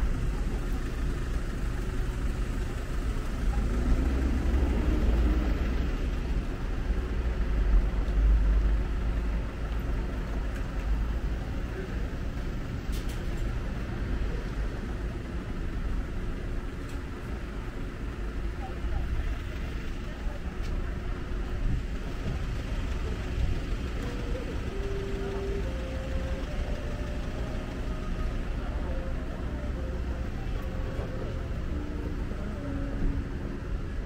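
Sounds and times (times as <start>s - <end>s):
people's voices: 0.0s - 34.0s
traffic noise: 0.0s - 34.0s.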